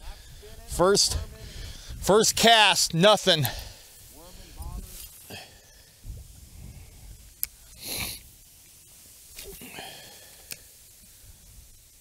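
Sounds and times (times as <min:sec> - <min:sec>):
short breathy burst: 0:03.5 - 0:08.3, 0:09.4 - 0:11.5.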